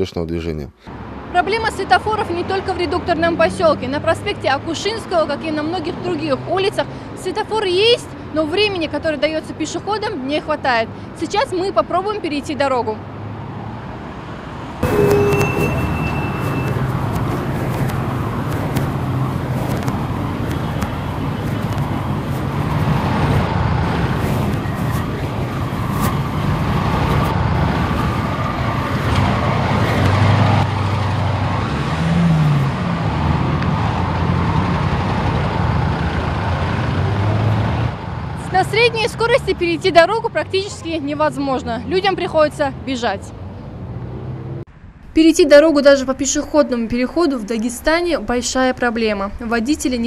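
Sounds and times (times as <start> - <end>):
cars driving past: 0.8 - 45.4
engine revving: 14.8 - 44.7.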